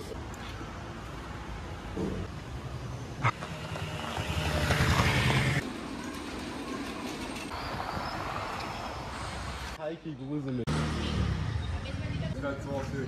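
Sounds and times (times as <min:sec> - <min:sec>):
street noise: 0:00.0 - 0:13.0
motor vehicle running: 0:01.9 - 0:08.8.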